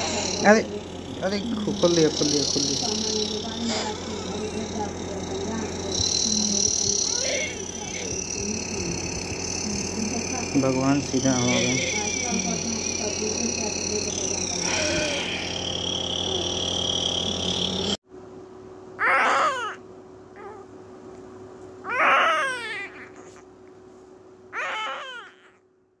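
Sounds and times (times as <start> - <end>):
loud hiss with whistling tones: 0.0 - 18.0
newborn baby crying: 1.2 - 5.6, 6.6 - 13.5, 19.0 - 19.8, 20.4 - 20.7, 21.8 - 23.4, 24.5 - 25.6.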